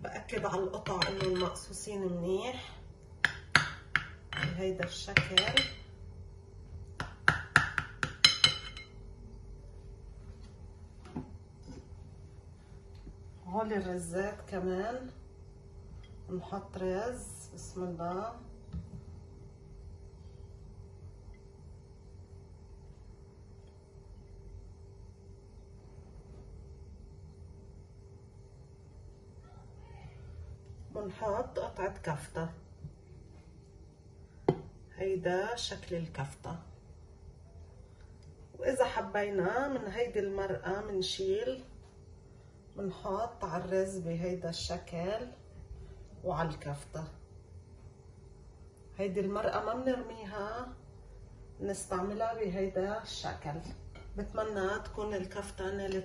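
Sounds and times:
spatula knocking glass dish: 0:00.8 - 0:01.6, 0:03.2 - 0:05.9, 0:07.0 - 0:08.9.

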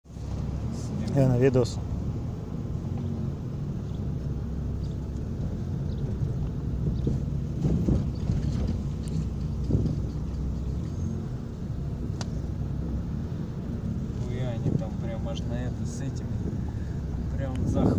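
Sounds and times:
car engine and tyres rumbling: 0:00.0 - 0:17.9.

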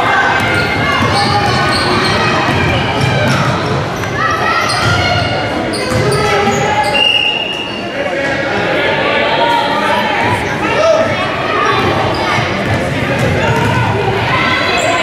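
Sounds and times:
voices echoing in a hall: 0:00.0 - 0:15.0.

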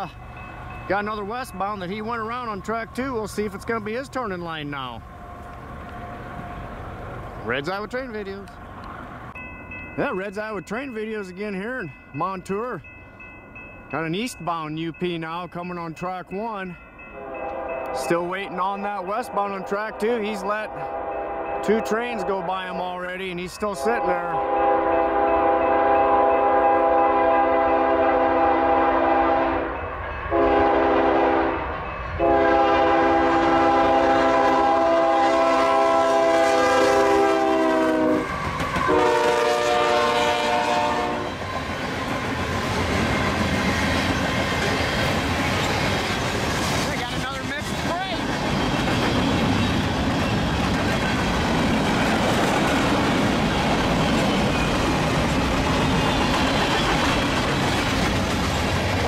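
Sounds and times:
freight cars rumbling: 0:00.0 - 0:17.1, 0:40.0 - 0:59.0
locomotive horn blasts: 0:17.2 - 0:18.0, 0:19.2 - 0:22.7, 0:23.8 - 0:31.6, 0:32.2 - 0:41.4.

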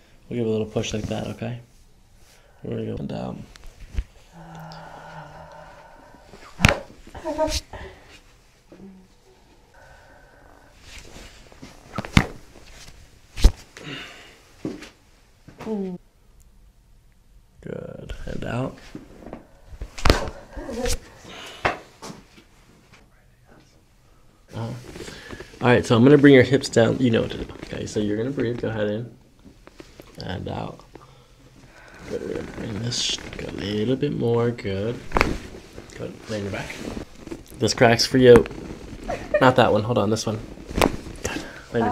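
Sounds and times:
spine cracking: 0:03.4 - 0:07.8, 0:08.7 - 0:14.0, 0:18.9 - 0:22.2, 0:29.4 - 0:34.0, 0:34.8 - 0:41.8
patient vocal sounds: 0:04.2 - 0:08.0
spine joints cracking: 0:06.4 - 0:07.2, 0:35.0 - 0:36.0, 0:36.9 - 0:39.2, 0:40.4 - 0:41.6.

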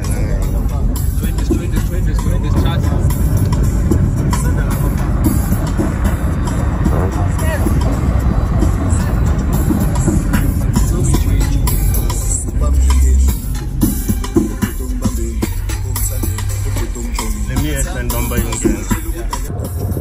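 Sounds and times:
people's voices: 0:00.0 - 0:19.7
car engines rumbling: 0:00.0 - 0:20.0
music: 0:00.0 - 0:20.0.

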